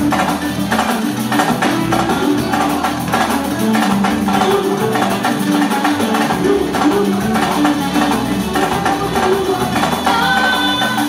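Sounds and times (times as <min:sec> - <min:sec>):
drum beat: 0:00.0 - 0:11.0
live band music: 0:00.0 - 0:11.0.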